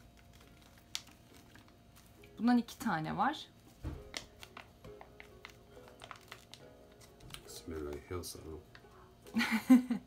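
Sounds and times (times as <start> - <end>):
handling plastic sachets: 0.0 - 2.5, 3.6 - 9.1.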